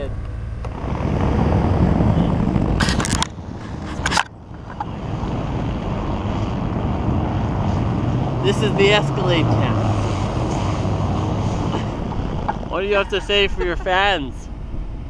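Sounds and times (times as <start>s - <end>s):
idling engine rumble: 0.0s - 15.0s
wind buffeting microphone: 0.0s - 15.0s.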